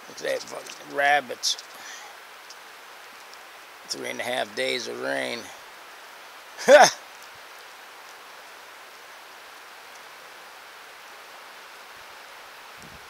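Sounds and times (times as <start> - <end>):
fast-flowing creek rushing: 0.0 - 7.1.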